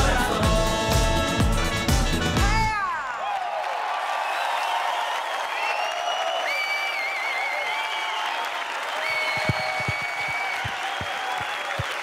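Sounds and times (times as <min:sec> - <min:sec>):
audience applauding and cheering: 0:02.7 - 0:12.0.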